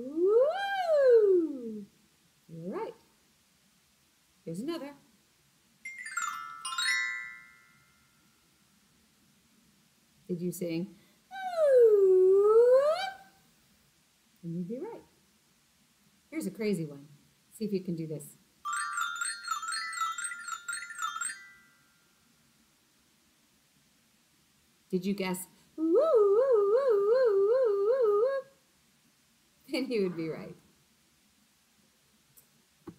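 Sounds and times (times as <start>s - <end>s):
xylophone notes: 5.9s - 8.0s, 18.7s - 21.8s.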